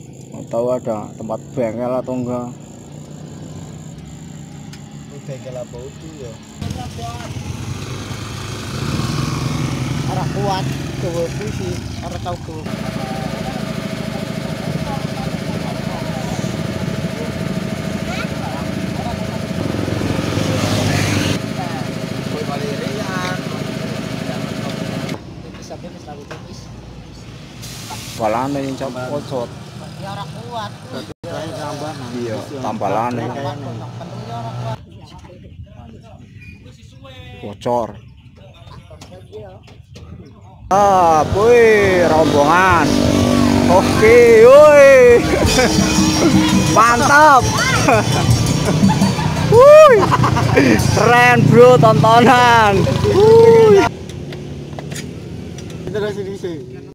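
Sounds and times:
voices: 0:00.0 - 0:55.1
motor running steadily: 0:02.5 - 0:25.2, 0:40.9 - 0:54.9.

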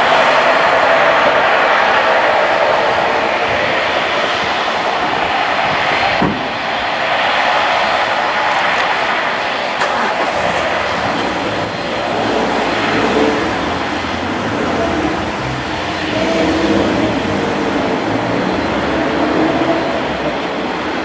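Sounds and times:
turboprop engines running: 0:00.0 - 0:21.0.

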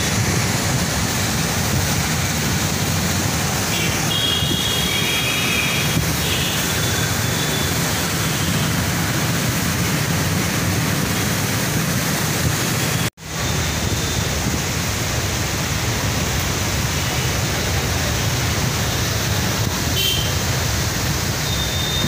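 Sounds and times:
floodwater flowing fast: 0:00.0 - 0:22.0.

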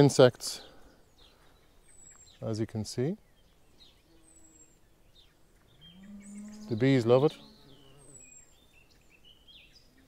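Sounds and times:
soft bird chirps: 0:00.6 - 0:10.0.

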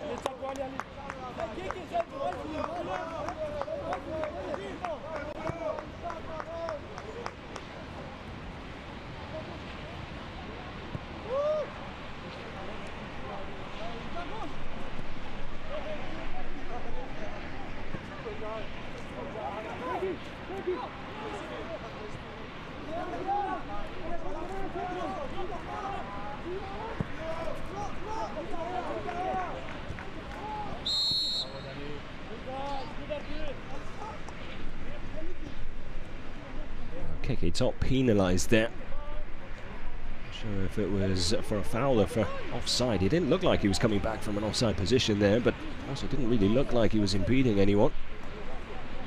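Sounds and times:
people calling out and talking: 0:00.0 - 0:49.0
loud shout: 0:11.2 - 0:11.8, 0:22.9 - 0:31.6.

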